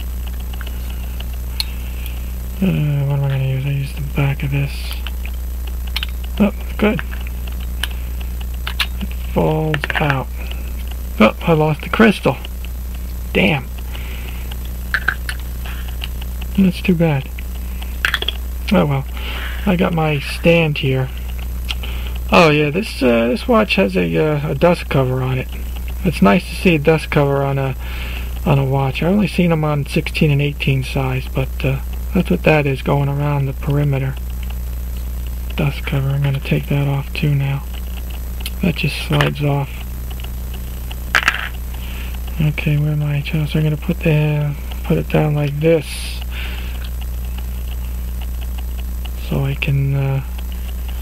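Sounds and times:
low electrical hum: 0.0s - 51.0s.

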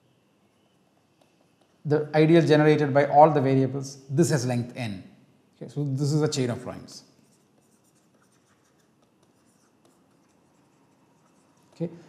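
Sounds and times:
pen writing on tablet: 0.5s - 1.8s, 7.2s - 11.9s.

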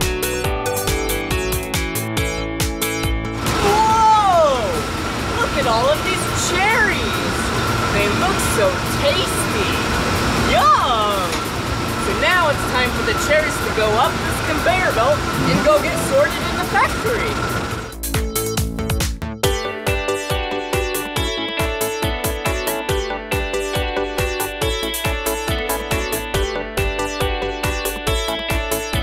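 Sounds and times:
conveyor machinery humming: 3.4s - 18.0s.

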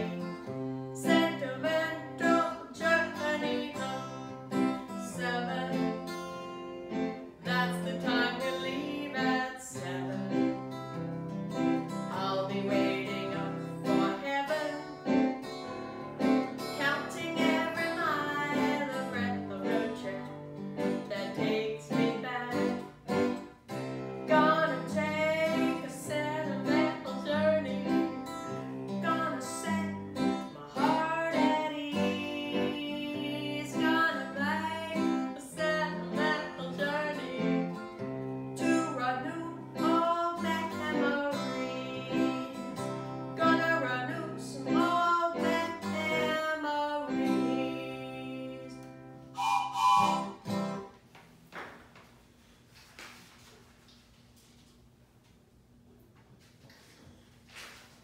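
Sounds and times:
acoustic guitar strumming: 0.0s - 51.0s
woman singing: 1.0s - 6.6s, 7.4s - 10.6s, 12.1s - 15.3s, 16.6s - 23.0s, 24.2s - 28.2s, 28.9s - 38.0s, 38.6s - 49.0s.

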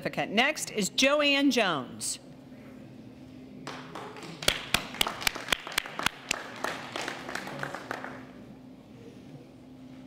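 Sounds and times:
sharp even hand claps: 3.6s - 8.3s
small group applauding: 3.6s - 8.5s.

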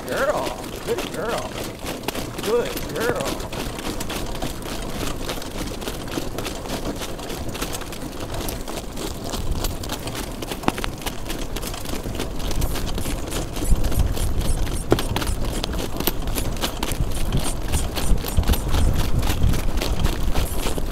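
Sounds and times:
cart wheels rumbling on track: 0.0s - 20.9s
horse hoofbeats: 0.0s - 20.9s
wind on microphone: 12.4s - 20.9s.

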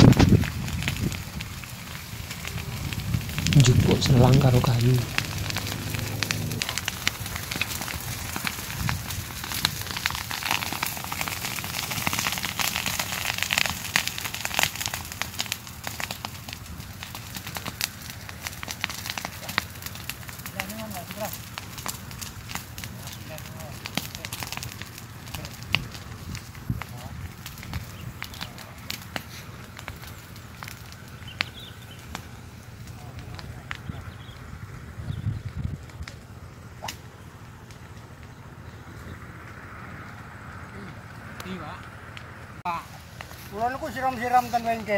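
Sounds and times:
grass fire crackling and popping: 0.0s - 44.9s.

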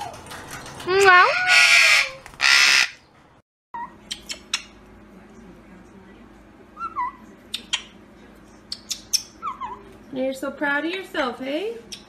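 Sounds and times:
parrot calling: 1.1s - 3.1s, 3.8s - 4.8s, 6.8s - 8.0s, 8.7s - 9.9s
harsh parrot squawks: 1.2s - 3.0s.

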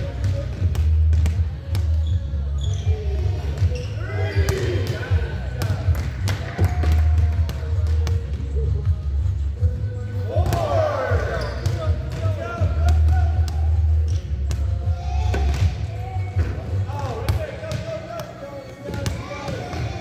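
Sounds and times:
basketballs bouncing on wooden floor: 0.0s - 2.2s.

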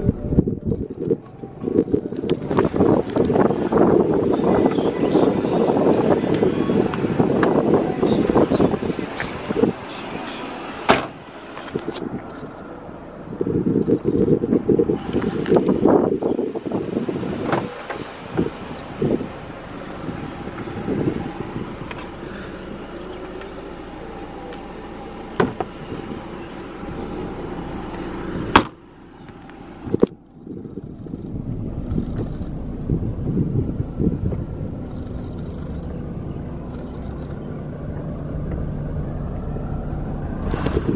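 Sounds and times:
wind rumbling on microphone: 0.0s - 40.9s
sharp clunks and knocks: 25.4s - 25.8s.

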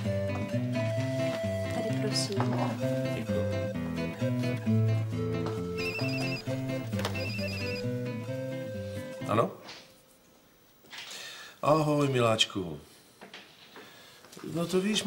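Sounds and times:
light guitar music: 0.0s - 9.4s
mobile phone ringing: 5.6s - 8.2s.

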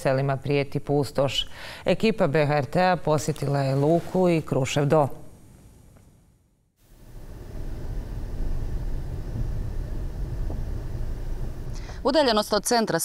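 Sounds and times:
faint hiss: 3.0s - 12.5s
steady low rumble: 6.9s - 12.7s.

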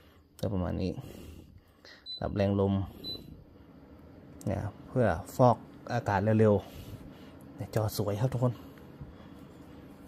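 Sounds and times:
air purifier beeping: 1.9s - 10.0s.

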